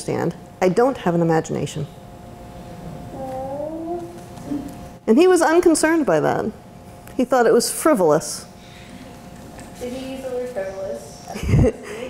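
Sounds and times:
faint steady hum: 0.0s - 12.0s
person's drawn-out voiced sound: 3.1s - 4.7s.

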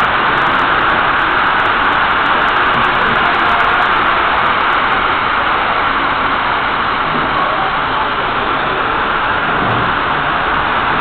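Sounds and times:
model trains rolling on track: 0.0s - 11.0s.

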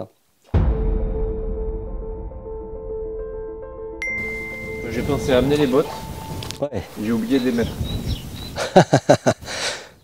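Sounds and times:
person laughing: 8.6s - 9.9s
breathy out-breath: 9.4s - 10.0s.

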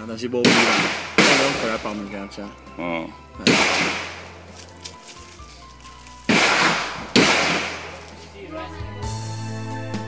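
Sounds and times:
rifle shot with long echo: 0.4s - 2.0s, 3.4s - 4.4s, 6.3s - 8.1s.

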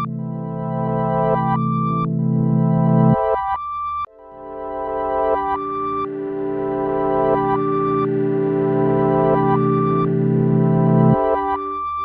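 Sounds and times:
instrumental music sustained chords: 0.0s - 12.0s.

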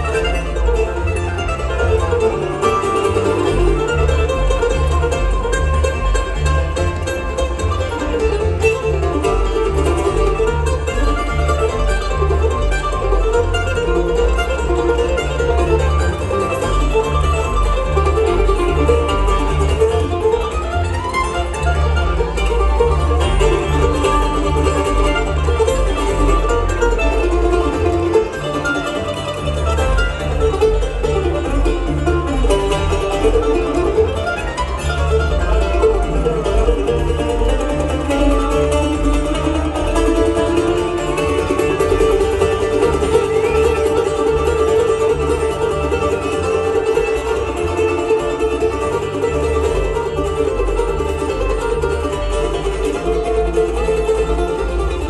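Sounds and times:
acoustic guitar: 0.0s - 55.0s
banjo picking: 0.0s - 55.0s
mandolin picking: 0.0s - 55.0s
upright bass: 0.0s - 55.0s.

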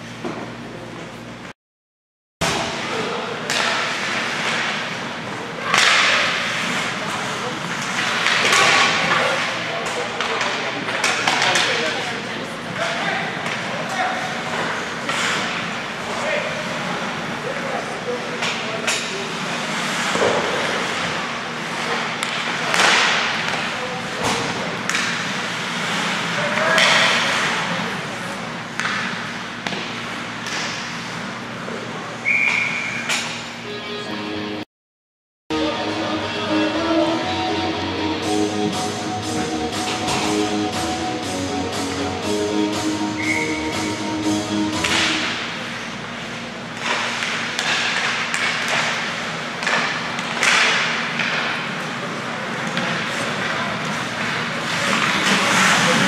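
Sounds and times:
puck and sticks hitting boards: 2.4s - 12.0s, 18.4s - 27.8s, 28.7s - 31.0s, 39.8s - 40.4s, 44.7s - 45.8s, 46.8s - 56.0s
skates scraping ice: 19.3s - 23.8s, 44.8s - 56.0s
whistle blast: 32.2s - 33.1s, 43.1s - 43.9s.

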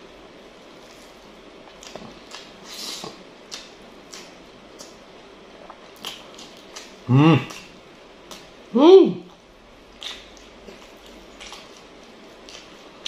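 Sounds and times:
person chewing food: 0.8s - 8.6s, 9.3s - 13.0s.

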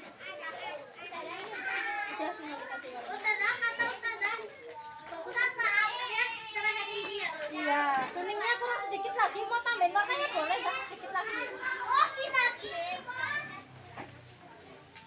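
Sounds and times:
children chattering: 0.0s - 15.0s.

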